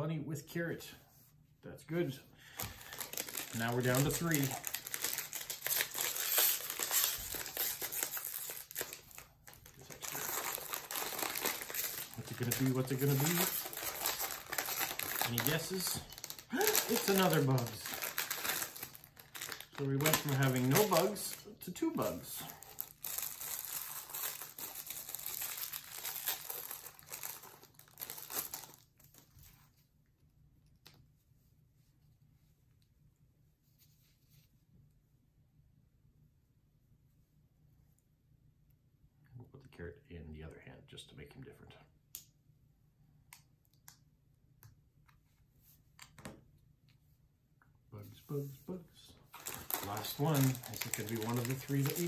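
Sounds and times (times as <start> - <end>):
plastic bag crinkling: 2.5 - 29.3, 49.3 - 52.0.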